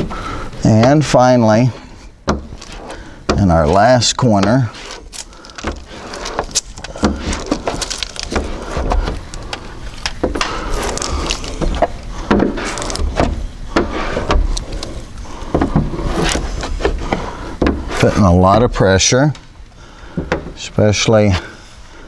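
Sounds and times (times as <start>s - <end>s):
squeegee scraping on glass: 2.4s - 17.2s.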